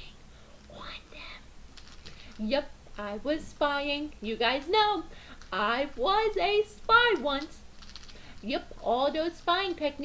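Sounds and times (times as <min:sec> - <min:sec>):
person whispering: 0:00.0 - 0:01.5.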